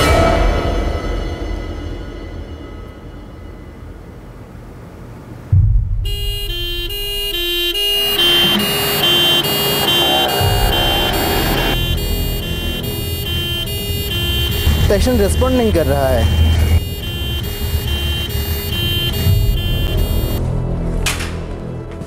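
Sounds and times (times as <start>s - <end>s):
road noise: 4.2s - 22.0s
ambulance two-tone siren: 6.1s - 20.4s.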